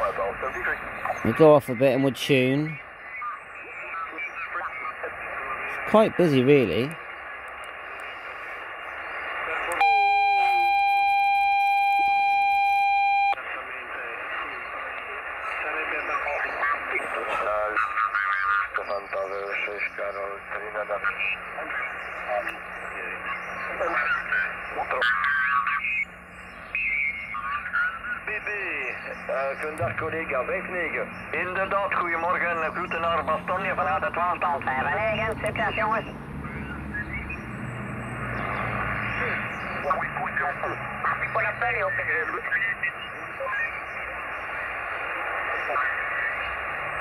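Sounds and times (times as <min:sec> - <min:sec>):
loud steady tone: 0:00.0 - 0:16.6, 0:19.7 - 0:37.6
radio hiss: 0:00.0 - 0:37.4, 0:38.3 - 0:47.0
garbled radio voices: 0:00.0 - 0:37.7, 0:38.3 - 0:47.0
low hum: 0:21.4 - 0:41.8.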